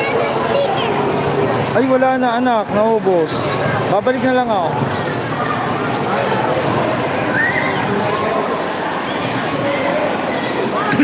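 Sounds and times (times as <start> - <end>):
crowd voices talking and calling: 0.0 - 11.0.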